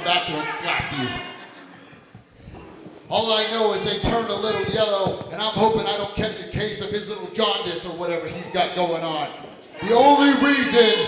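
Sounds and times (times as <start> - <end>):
man speaking over amplification: 0.0 - 1.4, 3.1 - 11.0.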